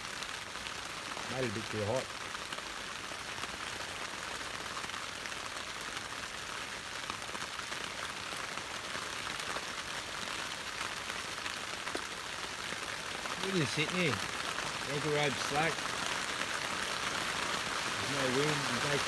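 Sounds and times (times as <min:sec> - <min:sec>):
rain on a plastic tarp: 0:00.0 - 0:19.0.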